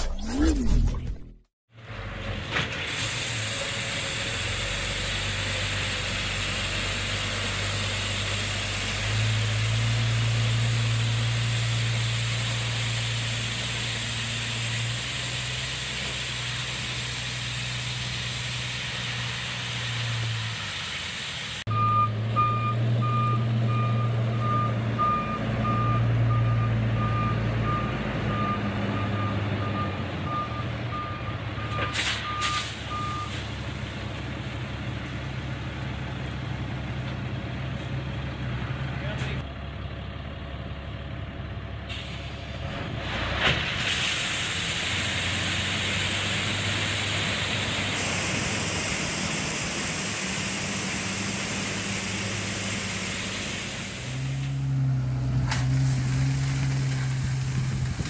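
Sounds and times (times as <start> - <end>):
diesel engine running: 0.0 - 58.0
gravel pouring with rushing hiss: 2.8 - 21.6, 42.0 - 58.0.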